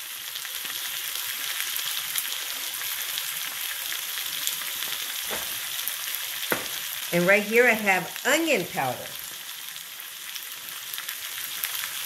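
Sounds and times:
meat sizzling in frying pan: 0.0 - 12.0.

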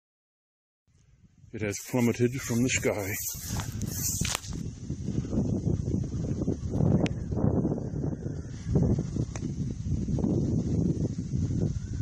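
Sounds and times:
wind buffeting microphone: 1.0 - 12.0.

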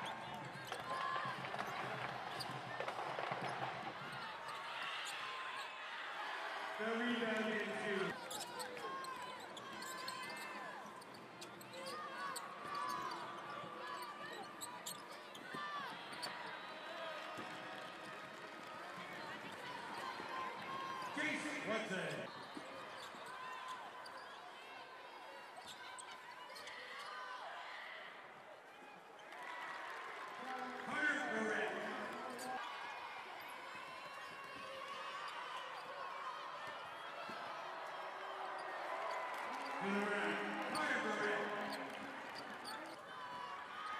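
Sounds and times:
sneakers squeaking: 0.0 - 5.8, 7.0 - 17.6, 19.0 - 24.7, 25.4 - 27.2, 31.8 - 43.9
indistinct arena voices: 0.0 - 43.9.

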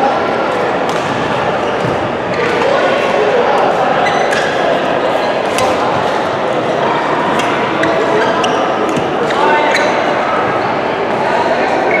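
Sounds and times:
hubbub of voices: 0.0 - 12.0
shoes squeaking on court floor: 4.0 - 5.7, 7.3 - 10.2.

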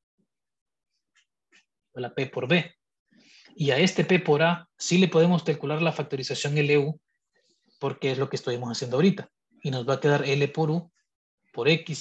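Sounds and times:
man speaking: 7.8 - 10.9, 11.6 - 12.0.

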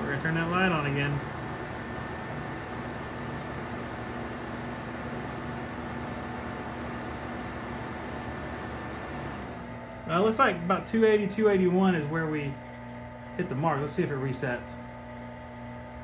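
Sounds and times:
electric fans rushing air: 0.0 - 16.0.

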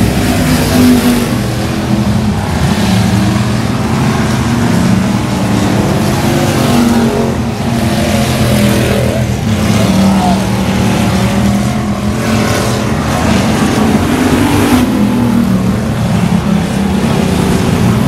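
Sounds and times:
race car engines roaring: 0.0 - 18.0.

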